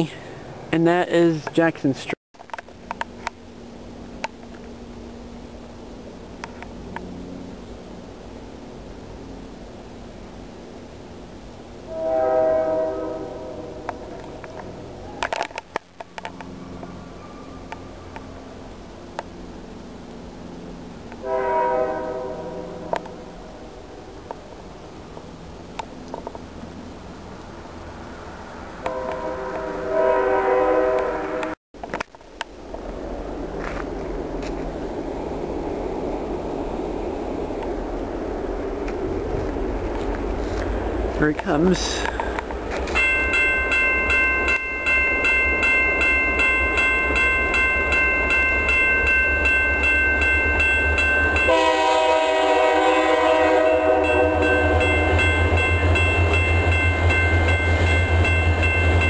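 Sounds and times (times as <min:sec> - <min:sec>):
low drone of train: 0:00.0 - 0:59.0
locomotive air horn blasts: 0:11.9 - 0:14.2, 0:21.2 - 0:22.9, 0:28.8 - 0:31.6, 0:51.4 - 0:55.2.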